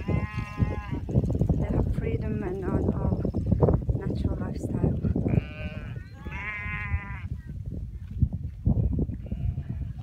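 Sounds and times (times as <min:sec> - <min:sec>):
goats and sheep bleating: 0:00.0 - 0:01.0, 0:05.2 - 0:07.4, 0:08.8 - 0:10.0.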